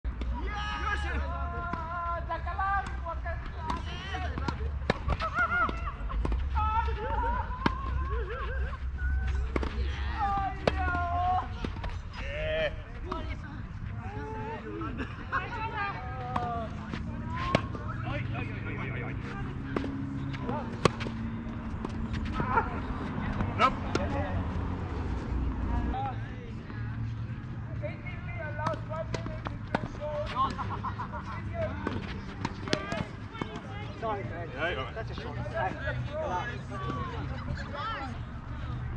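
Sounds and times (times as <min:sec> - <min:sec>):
tennis balls struck by racquets: 0:02.8 - 0:08.4, 0:09.3 - 0:12.2, 0:16.0 - 0:26.0, 0:28.4 - 0:34.0
tennis ball being hit: 0:09.5 - 0:11.0, 0:19.2 - 0:22.4
people talking: 0:09.7 - 0:20.9, 0:27.7 - 0:38.9.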